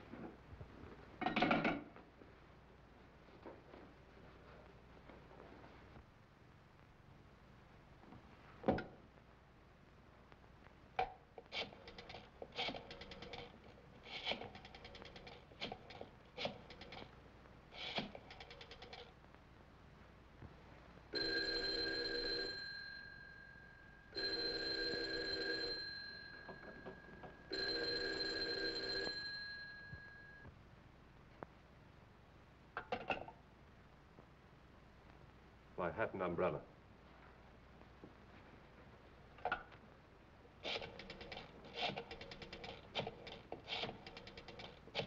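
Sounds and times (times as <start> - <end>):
telephone bell ringing: 21.1 - 30.5.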